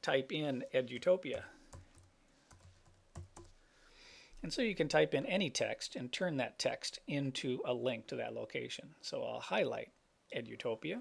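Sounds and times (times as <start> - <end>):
keyboard typing: 1.0 - 3.6.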